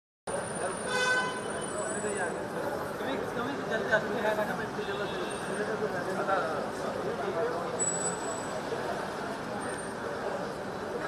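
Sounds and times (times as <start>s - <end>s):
street noise: 0.3s - 11.0s
voices: 0.3s - 11.0s
vehicle horn: 0.9s - 1.5s.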